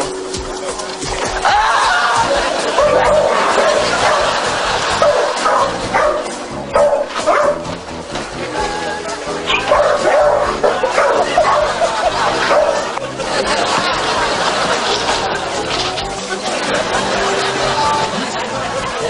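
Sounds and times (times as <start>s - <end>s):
music playing: 0.0s - 19.0s
dog barking: 2.7s - 4.4s, 5.0s - 7.6s, 9.5s - 12.9s.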